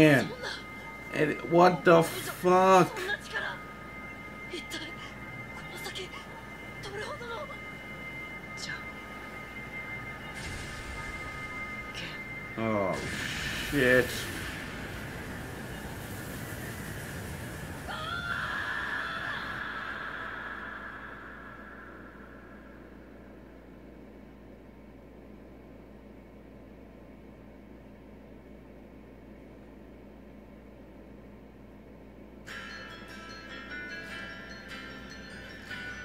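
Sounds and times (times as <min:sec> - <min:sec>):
high wavering cry: 0:00.0 - 0:13.2, 0:17.8 - 0:23.5
soft chiming music: 0:00.0 - 0:14.2, 0:32.5 - 0:36.0
low hum: 0:00.0 - 0:36.0
rushing blast of noise: 0:10.0 - 0:23.5.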